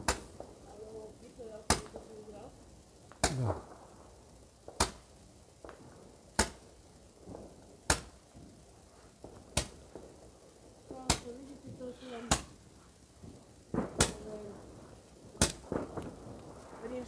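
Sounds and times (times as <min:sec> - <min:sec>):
fireworks bangs: 0:00.0 - 0:17.0.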